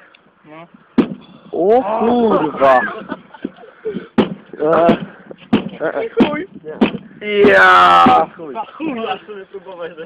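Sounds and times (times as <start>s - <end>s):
knocks on window glass: 4.2s - 8.3s.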